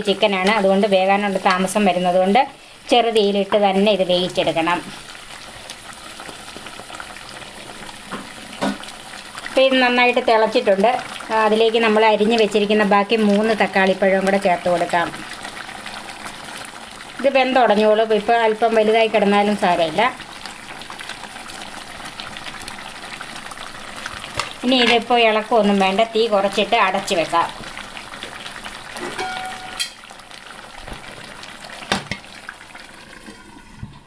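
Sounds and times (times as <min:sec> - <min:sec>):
curry sizzling in a pan: 0:00.0 - 0:34.0.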